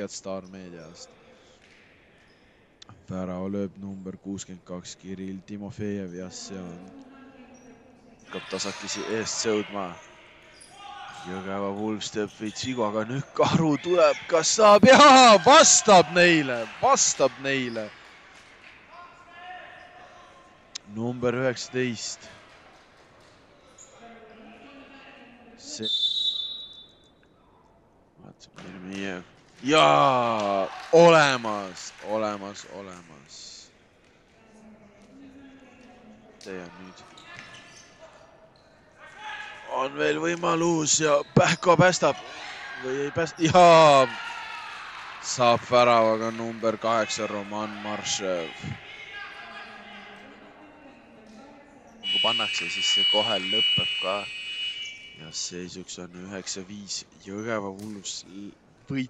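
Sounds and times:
faint voices in hall: 4.4s - 26.6s, 27.3s - 59.0s
man commentating: 8.3s - 10.0s, 11.0s - 17.9s, 28.3s - 33.3s, 39.2s - 44.2s, 45.2s - 49.5s, 52.1s - 54.3s
distant echoing voice: 13.5s - 21.0s, 42.0s - 55.4s
referee's whistle blast: 14.0s - 17.3s, 25.7s - 27.1s, 52.0s - 55.4s
ball played on wooden court: 37.0s - 38.0s, 57.8s - 58.0s.

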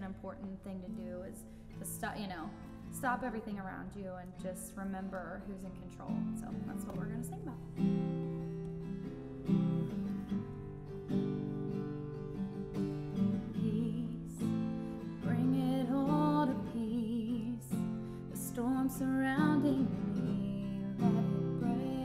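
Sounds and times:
acoustic guitar strumming: 0.0s - 22.0s
woman singing: 13.4s - 22.0s.

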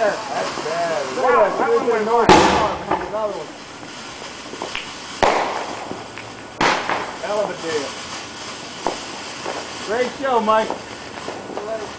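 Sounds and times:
fireworks bangs: 0.0s - 11.9s.

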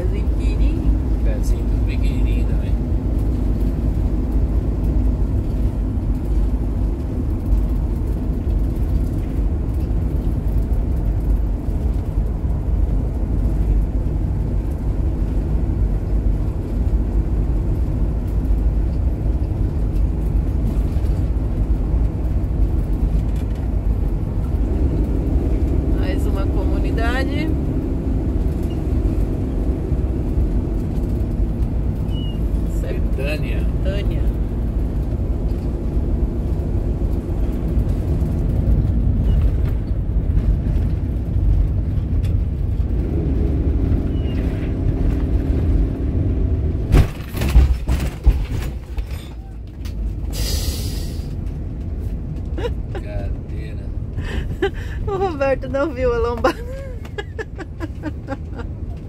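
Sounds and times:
road and engine rumble: 0.0s - 59.0s.

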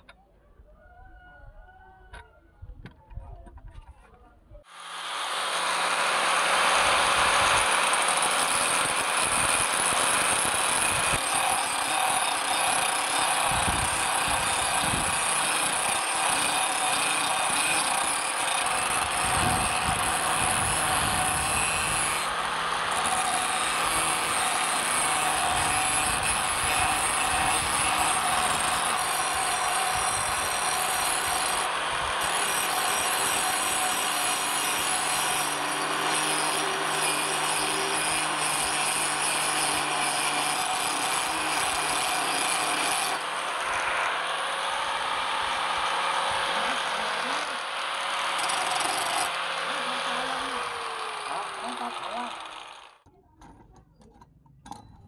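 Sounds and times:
angle grinder grinding steel: 4.7s - 53.0s.

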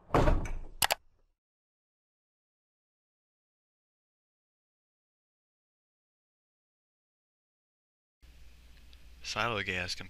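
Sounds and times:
quick sharp clicks: 0.8s - 1.0s.

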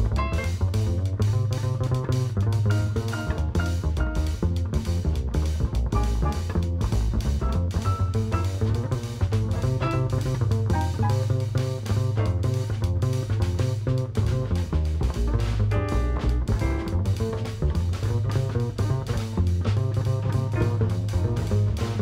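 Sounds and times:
drum kit with cymbals: 0.0s - 22.0s
plucked double bass: 0.0s - 22.0s
small jazz band playing: 0.0s - 22.0s.

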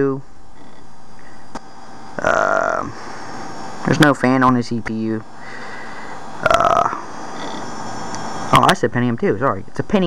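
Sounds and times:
desktop computer whirring: 0.0s - 10.0s.

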